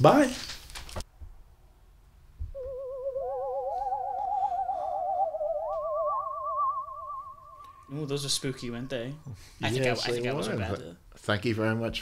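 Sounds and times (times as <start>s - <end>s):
eerie wavering theremin tones: 2.5s - 8.8s.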